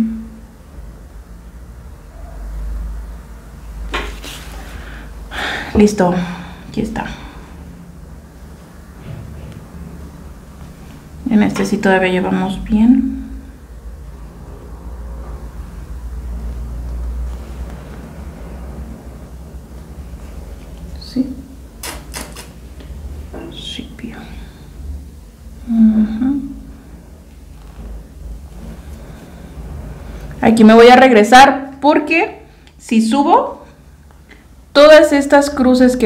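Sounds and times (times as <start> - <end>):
low steady rumble: 0.0 - 21.8, 22.6 - 36.0
fabric and thread rustling: 4.0 - 5.0, 27.3 - 30.5.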